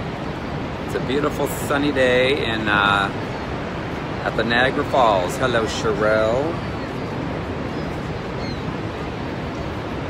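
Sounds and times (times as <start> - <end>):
waterfall roaring: 0.0 - 10.0.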